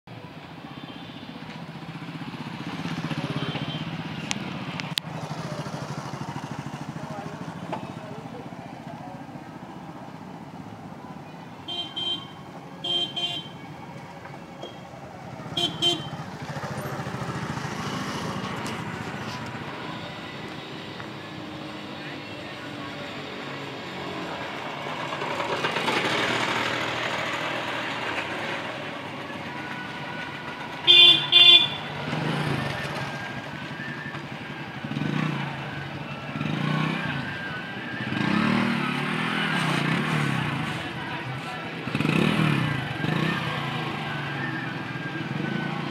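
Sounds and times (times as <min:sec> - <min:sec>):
traffic din: 0:00.0 - 0:45.9
voices: 0:00.1 - 0:45.9
vehicle horns beeping: 0:03.2 - 0:04.0, 0:11.6 - 0:13.6, 0:15.5 - 0:16.5, 0:30.8 - 0:32.3.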